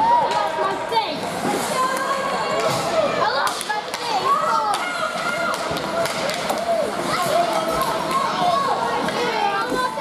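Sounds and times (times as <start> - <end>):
crowd calling and shouting: 0.0 - 10.0
hockey sticks clacking on puck: 5.5 - 6.7.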